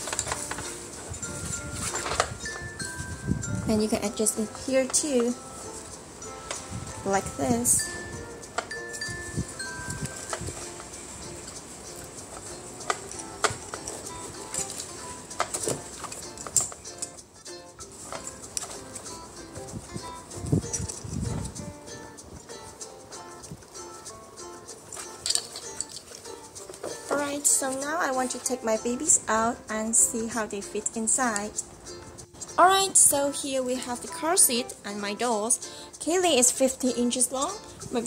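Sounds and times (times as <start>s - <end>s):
chime-like background music: 0.0s - 15.3s
plastic clip and straps clicking: 12.3s - 17.2s, 24.9s - 27.1s.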